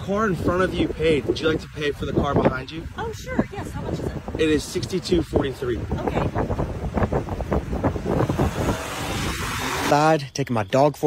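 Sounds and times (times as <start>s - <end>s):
car pulling away quickly: 6.8s - 10.0s.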